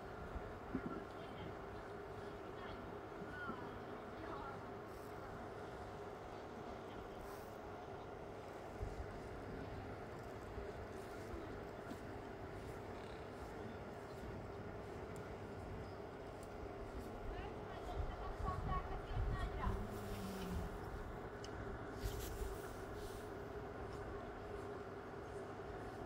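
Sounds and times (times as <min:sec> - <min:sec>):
low background noise: 0:00.0 - 0:26.0
faint indistinct voices: 0:00.1 - 0:26.0.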